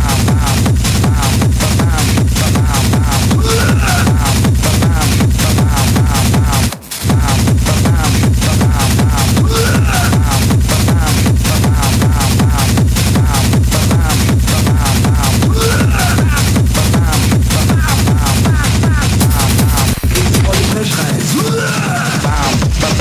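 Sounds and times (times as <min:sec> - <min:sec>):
hard techno music: 0:00.0 - 0:23.0.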